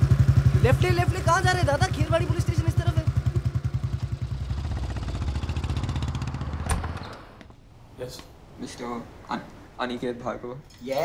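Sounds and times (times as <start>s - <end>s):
motorcycle engine running: 0.0s - 7.0s.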